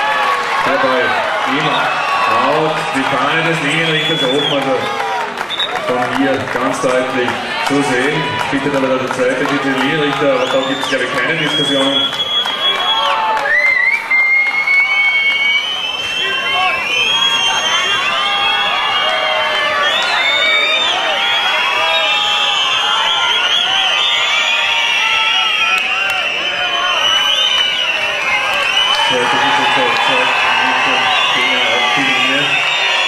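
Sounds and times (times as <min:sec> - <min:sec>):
stadium crowd shouting and cheering: 0:00.0 - 0:33.0.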